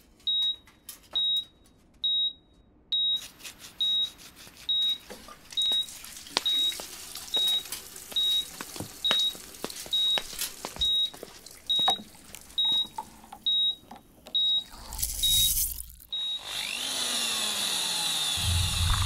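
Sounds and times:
patient monitor beeping: 6.5 - 16.4
low hum: 18.4 - 19.0.

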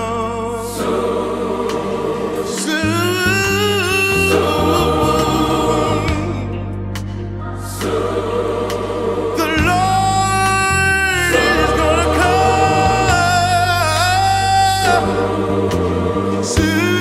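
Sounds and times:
bass line: 0.0 - 17.0
gospel choir singing: 0.0 - 17.0.

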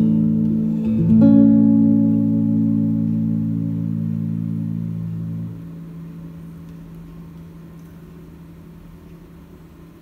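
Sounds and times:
nylon-string guitar chord ringing: 0.0 - 6.6.

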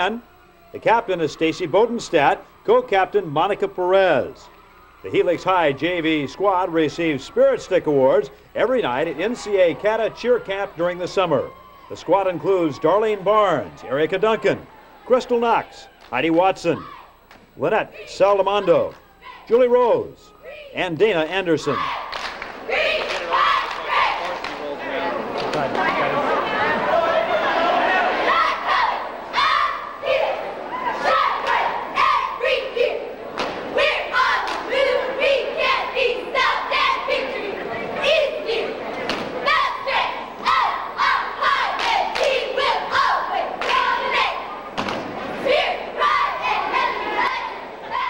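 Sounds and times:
crowd voices: 0.0 - 48.0
girls shouting a cheer: 16.7 - 17.2, 21.6 - 24.5, 25.7 - 44.7, 45.3 - 48.0.

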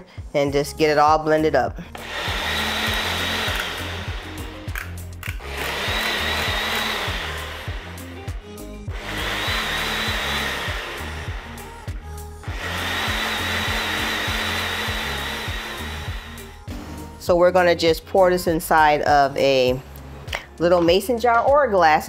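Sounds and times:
blender motor whining: 1.9 - 16.7.

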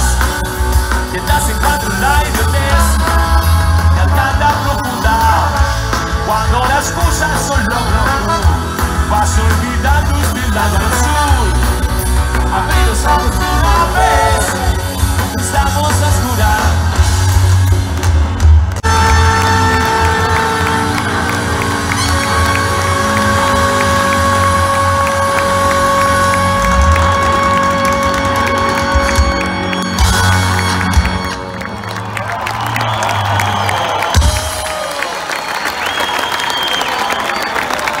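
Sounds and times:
live band playing amplified music: 0.0 - 38.0
crowd cheering: 17.4 - 38.0
applause: 17.7 - 38.0.

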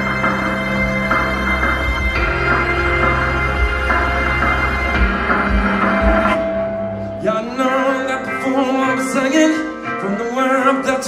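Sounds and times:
live rock band playing: 0.0 - 11.0
man singing: 7.2 - 11.0.

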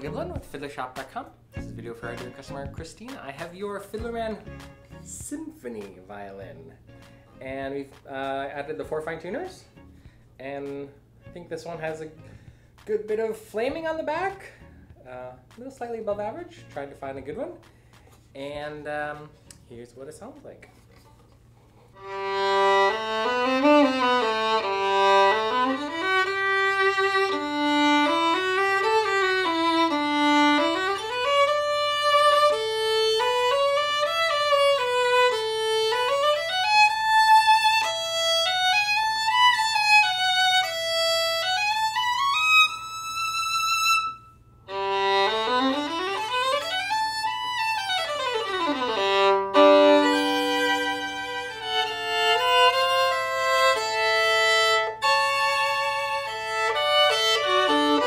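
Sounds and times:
solo violin melody: 22.0 - 58.0.

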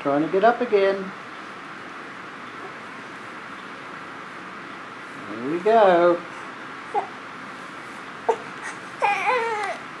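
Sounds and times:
baby crying: 6.9 - 7.2, 8.2 - 9.9.

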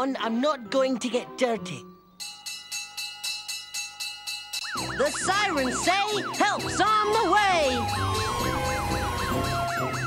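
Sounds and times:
fire alarm bell ringing rapidly: 2.2 - 10.0.

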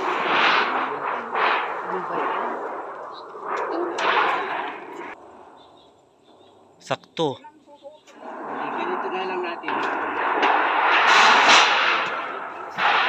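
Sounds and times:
thin sheet wobbling and rattling: 0.0 - 5.2.

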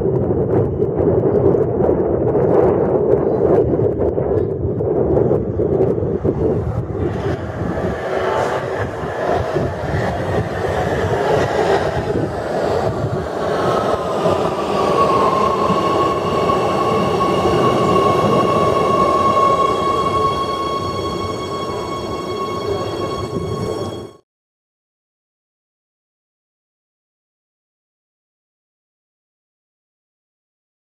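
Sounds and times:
train wheels rumbling on rails: 0.0 - 24.2
high train motor whine: 4.8 - 24.2
higher steady tones: 6.9 - 24.2.

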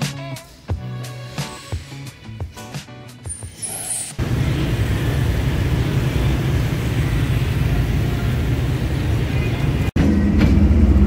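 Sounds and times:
low rumble of vehicles: 4.2 - 11.0.

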